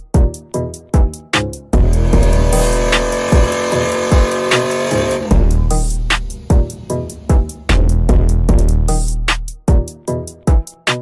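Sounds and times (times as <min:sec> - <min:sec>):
held synth chord: 0:01.8 - 0:09.1
deep bass drum hits: 0:01.8 - 0:09.4.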